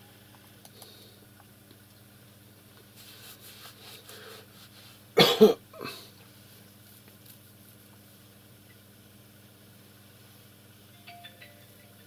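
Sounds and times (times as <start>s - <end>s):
person coughing: 5.2s - 6.1s.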